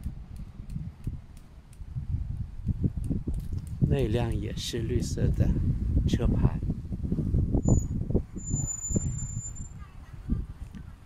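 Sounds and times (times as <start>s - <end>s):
rumble of vehicles: 0.0s - 11.0s
wind on microphone: 0.0s - 11.0s
thin high-pitched squeal: 7.6s - 9.8s.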